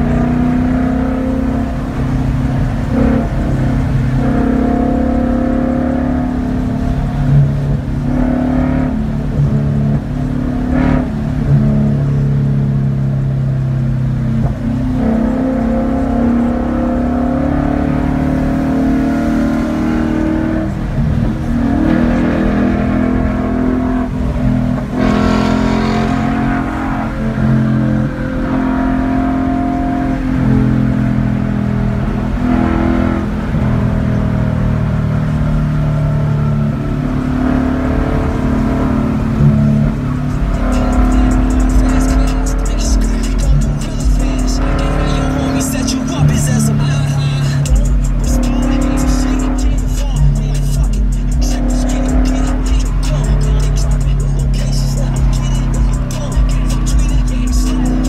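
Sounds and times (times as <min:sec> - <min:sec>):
car engine revving: 0:00.0 - 0:58.0
road rumble: 0:00.0 - 0:58.0.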